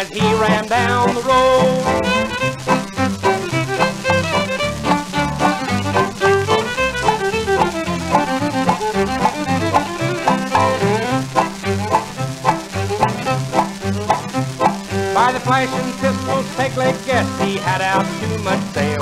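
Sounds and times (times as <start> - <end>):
small band playing western music: 0.0 - 19.0.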